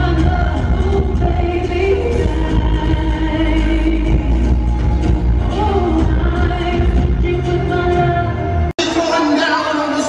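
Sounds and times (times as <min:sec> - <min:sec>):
loud pop concert music: 0:00.0 - 0:10.0.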